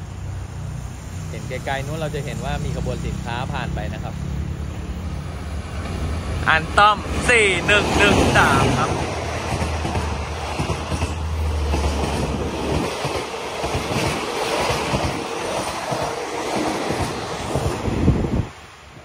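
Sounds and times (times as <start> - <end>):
train wheels clattering over rails: 7.0 - 18.1.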